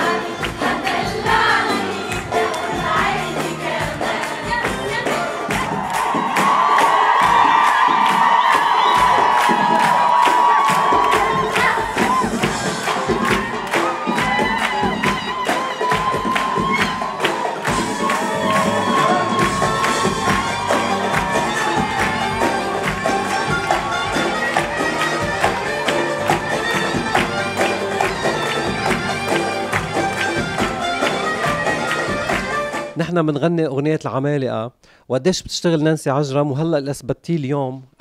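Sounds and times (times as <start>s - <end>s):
audience cheering and singing: 0.0s - 32.8s
live pop band playing: 0.0s - 33.0s
hand drums and tambourines: 0.4s - 33.0s.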